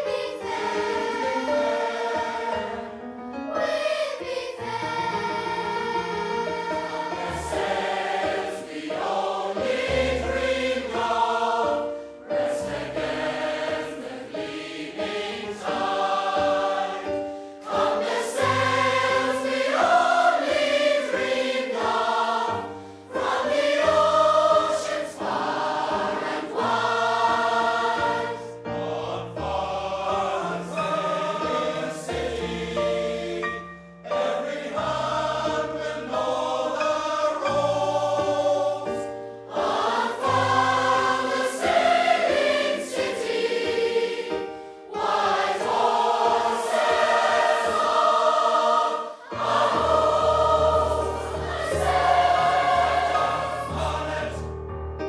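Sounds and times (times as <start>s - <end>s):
choir singing in harmony: 0.0s - 54.9s.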